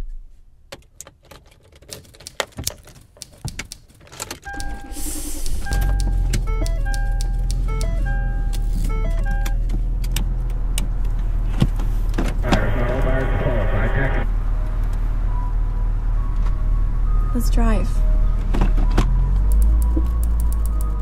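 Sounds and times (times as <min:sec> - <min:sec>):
clicks: 0:02.2 - 0:11.2, 0:19.0 - 0:21.0
short electronic beeps: 0:04.4 - 0:09.6
car radio being tuned: 0:04.4 - 0:15.0
car engine running: 0:04.5 - 0:21.0.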